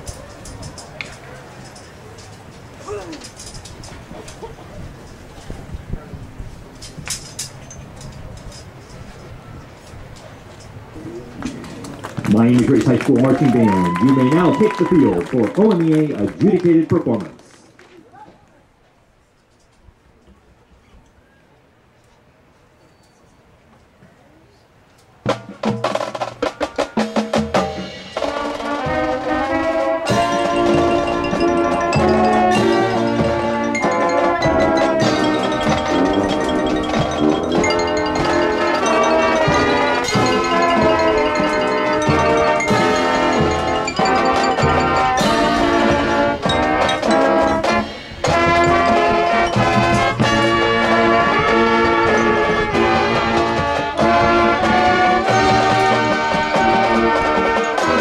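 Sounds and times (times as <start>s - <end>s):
marching band playing: 12.2s - 17.2s, 25.2s - 58.0s
sharp percussion hits: 25.3s - 58.0s.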